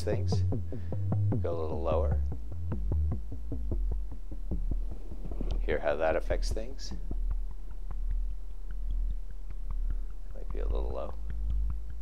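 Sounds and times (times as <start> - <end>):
deep synthesizer tone with ticking: 0.0 - 12.0.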